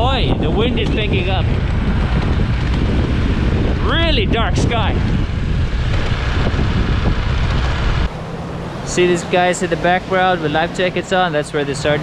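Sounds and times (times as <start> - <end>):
wind buffeting microphone: 0.0 - 8.2
scooter riding noise: 0.0 - 11.1.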